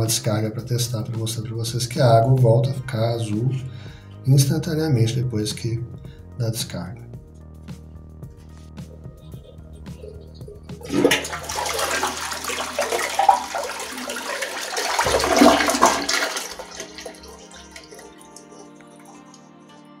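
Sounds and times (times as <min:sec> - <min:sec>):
toilet flushing: 0:09.9 - 0:19.4.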